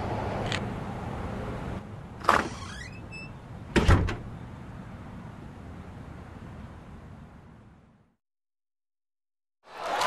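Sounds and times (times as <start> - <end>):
door clunk with squeak: 2.2 - 4.3.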